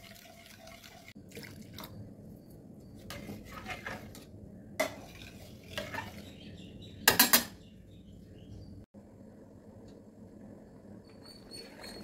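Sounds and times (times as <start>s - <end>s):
ladle scraping food in a pot: 3.1s - 6.3s.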